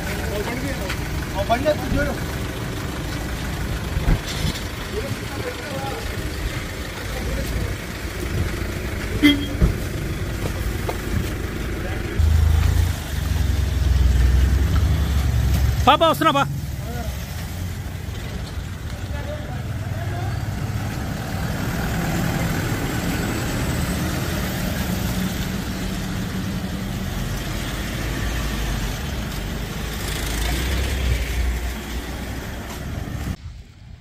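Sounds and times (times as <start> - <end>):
people's voices: 0.0 - 12.7
suv engines running: 0.0 - 33.4.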